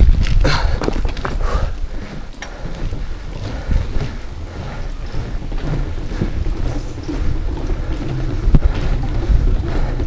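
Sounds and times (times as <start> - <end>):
bike tyres rumbling on wooden boards: 0.0 - 10.0
wind buffeting microphone: 0.0 - 10.0.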